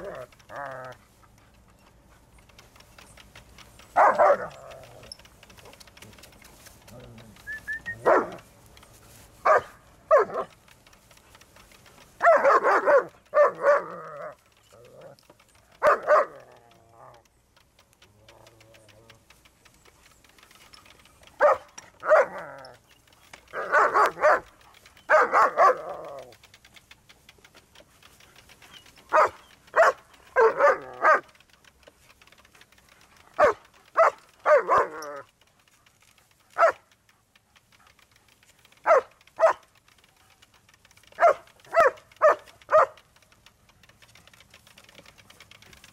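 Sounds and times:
dogs barking: 3.2 - 5.5, 7.8 - 11.2, 11.9 - 16.8, 21.3 - 26.4, 28.4 - 31.7, 32.5 - 35.3, 36.4 - 39.8, 40.8 - 43.1.

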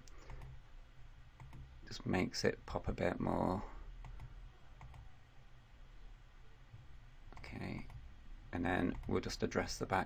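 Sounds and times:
computer mouse clicks: 0.0 - 0.6, 1.4 - 1.7, 4.0 - 5.1, 8.9 - 9.2
low steady hum: 0.0 - 10.0.

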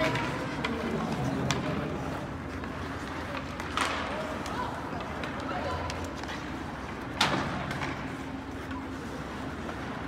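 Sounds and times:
skates on ice: 0.0 - 10.0.

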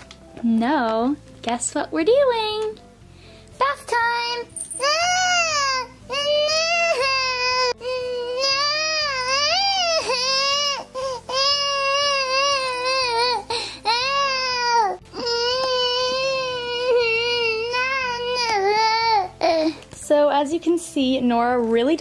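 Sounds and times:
toddler crying: 4.8 - 19.8.

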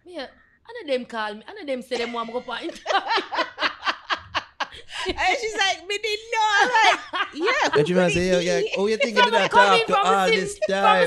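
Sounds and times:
person laughing: 6.5 - 11.0.

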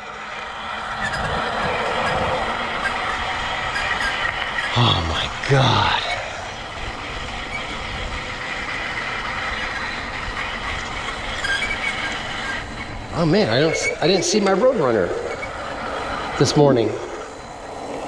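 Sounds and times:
bike tyres rolling on pavement: 0.0 - 18.0
wind on microphone: 0.8 - 5.5.

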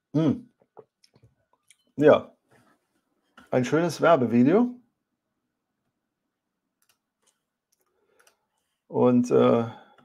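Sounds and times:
man's wordless vocal sound: 0.2 - 0.4
faint small clicks: 6.8 - 8.4.

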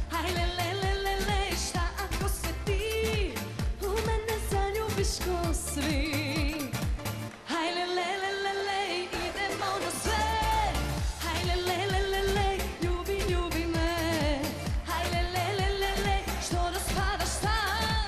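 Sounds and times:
heavy dance beat: 0.0 - 7.3, 9.1 - 18.0
woman singing pop-folk song: 0.0 - 18.0.

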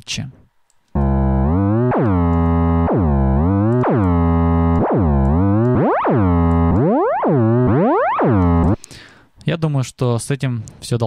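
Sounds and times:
synth bass notes: 1.0 - 8.8.

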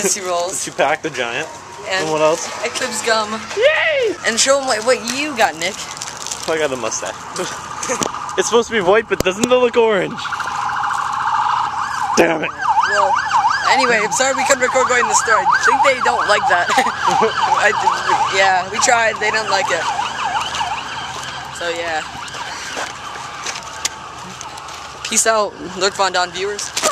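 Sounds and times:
outdoor street noise: 0.0 - 26.9
electronic siren warbling: 6.8 - 26.5.

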